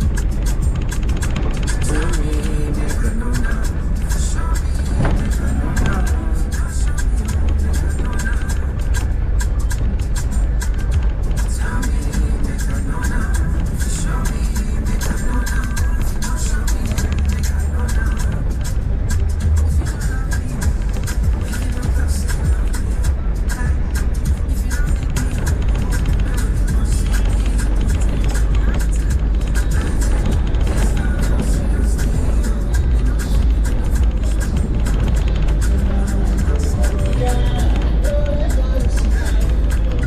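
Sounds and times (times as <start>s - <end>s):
car rumbling on dirt road: 0.0s - 40.0s
music with singing: 0.0s - 40.0s.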